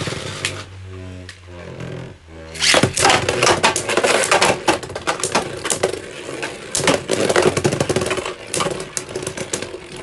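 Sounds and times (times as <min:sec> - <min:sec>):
spinning tops clashing in plastic arena: 0:02.6 - 0:10.0.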